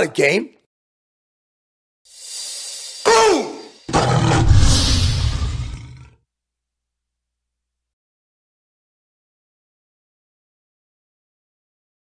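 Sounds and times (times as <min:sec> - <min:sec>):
tiger roar effect: 0:03.0 - 0:06.2
rising whoosh: 0:03.8 - 0:06.0.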